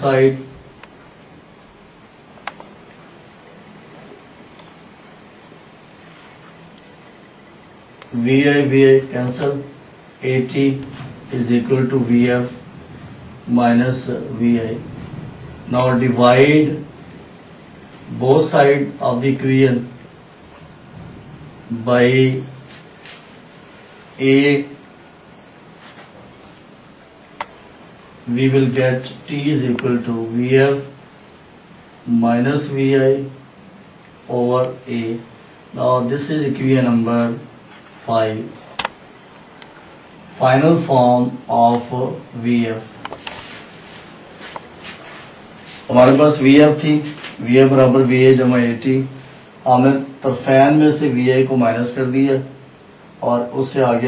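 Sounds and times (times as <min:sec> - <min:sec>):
crickets chirring: 0:00.0 - 0:54.0
faint background hiss: 0:00.0 - 0:54.0
high-pitched steady whine: 0:00.0 - 0:54.0
faint chirp: 0:22.3 - 0:22.7, 0:25.0 - 0:25.6.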